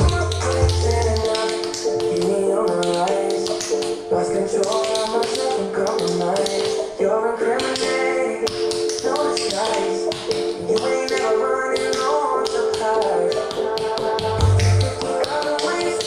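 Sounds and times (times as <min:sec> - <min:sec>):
pop song with heavy bass: 0:00.0 - 0:16.0.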